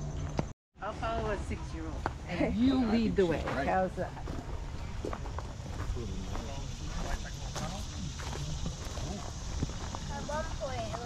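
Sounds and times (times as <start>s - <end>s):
footsteps crunching on mulch: 3.2s - 11.0s
people talking indistinctly: 5.7s - 11.0s.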